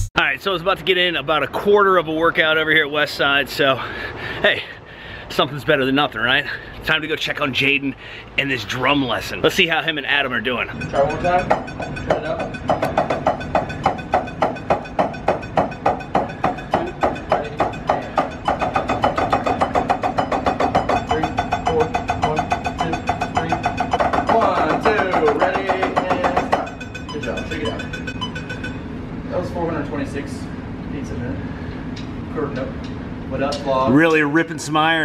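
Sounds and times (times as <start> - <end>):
drumsticks striking a practice pad: 10.8 - 28.8.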